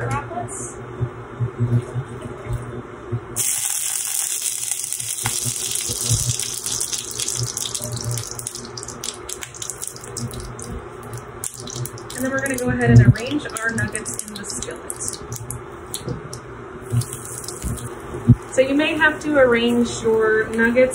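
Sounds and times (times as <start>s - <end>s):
oil sizzling in frying pan: 3.4s - 10.6s.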